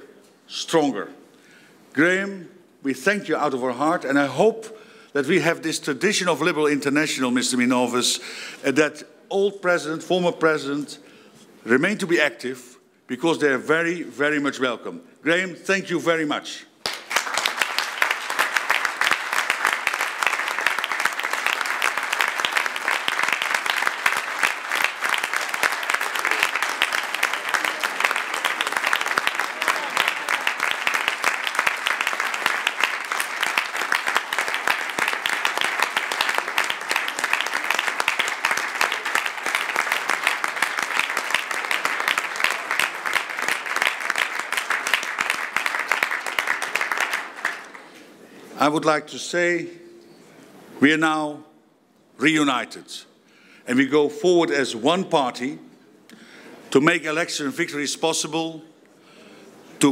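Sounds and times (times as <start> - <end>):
large audience applauding: 16.8 - 48.0.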